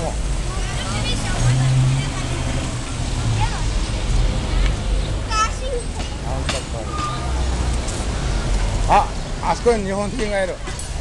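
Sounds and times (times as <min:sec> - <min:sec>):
voices of vendors and passers-by: 0:00.0 - 0:11.0.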